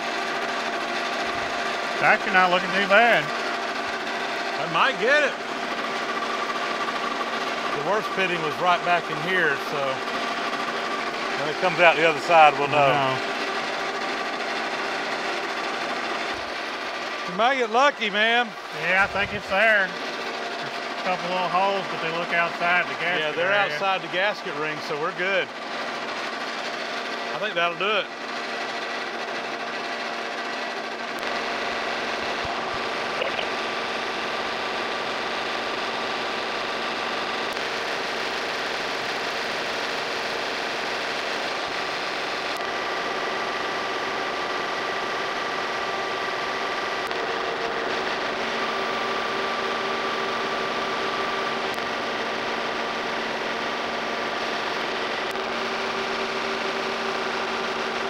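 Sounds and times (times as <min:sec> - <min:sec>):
boring mill machine hum: 0:00.0 - 0:58.0.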